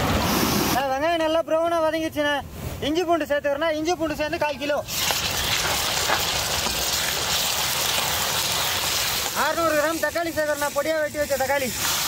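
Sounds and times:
paste and onions sizzling in oil: 4.8s - 12.0s.

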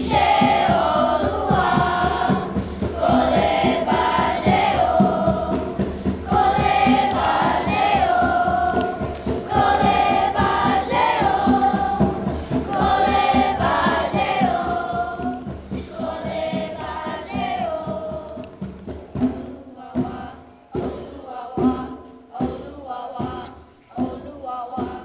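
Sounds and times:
steady low beat: 0.0s - 18.3s
children's choir singing: 0.0s - 25.0s.

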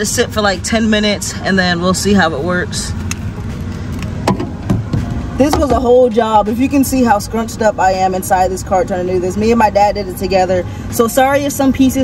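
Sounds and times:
low rumble inside a car: 0.0s - 12.0s.

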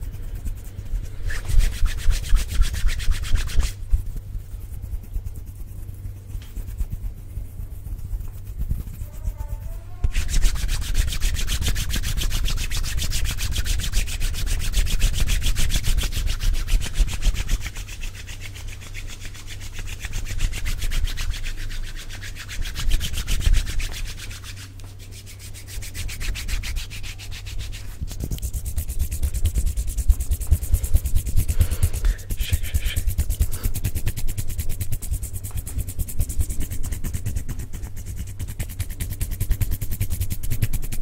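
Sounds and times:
hands rubbing together: 0.0s - 41.0s.

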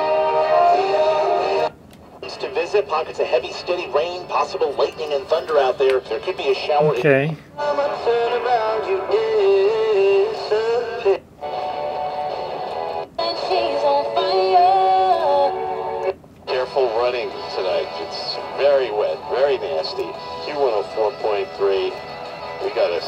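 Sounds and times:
radio music through small speaker: 1.6s - 8.5s, 16.5s - 23.0s.

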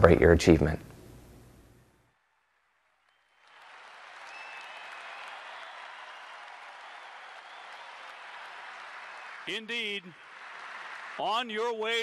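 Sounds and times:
stadium crowd applauding: 2.3s - 12.0s.

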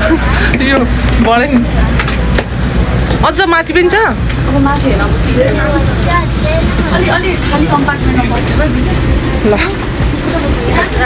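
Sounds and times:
train carriage rumble: 0.0s - 11.0s.

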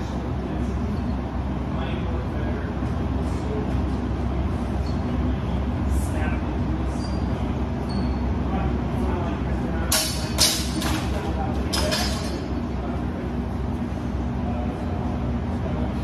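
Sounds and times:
low rumble of large hall: 0.0s - 16.0s.

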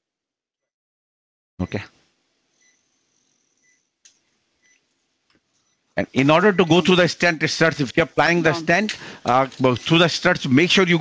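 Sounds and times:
patient monitor beeps: 1.6s - 1.9s, 2.6s - 3.9s, 4.6s - 4.9s, 5.6s - 6.0s.

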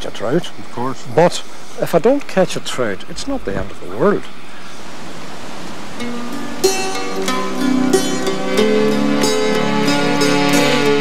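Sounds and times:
steady rushing noise: 0.0s - 11.0s
plucked string music: 5.9s - 11.0s.

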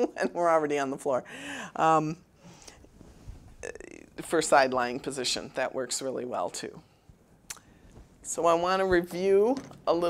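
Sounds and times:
woman speaking: 0.0s - 2.3s, 3.6s - 6.9s, 8.2s - 10.0s.

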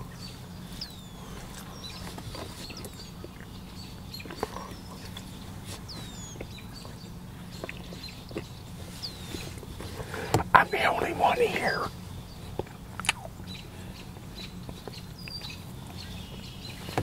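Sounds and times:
birds chirping: 0.0s - 17.0s
chewing clicks: 7.6s - 8.5s, 12.6s - 13.3s.

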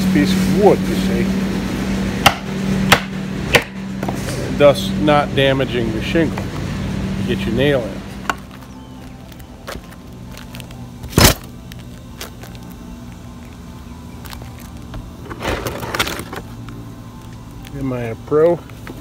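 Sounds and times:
faint steady hum: 1.4s - 19.0s.

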